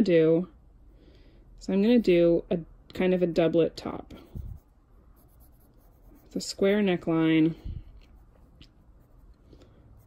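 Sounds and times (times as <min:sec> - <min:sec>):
pencil scratching on paper: 0:01.8 - 0:02.4, 0:04.0 - 0:07.0, 0:08.0 - 0:10.0.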